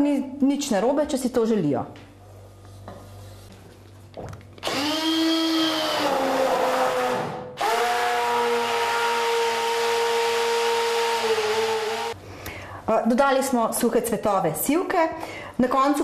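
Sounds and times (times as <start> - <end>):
stick blender running: 4.6 - 12.2.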